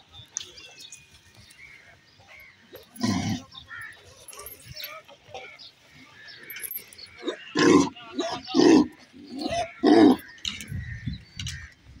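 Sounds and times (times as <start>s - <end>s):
cattle calling: 7.1s - 10.8s.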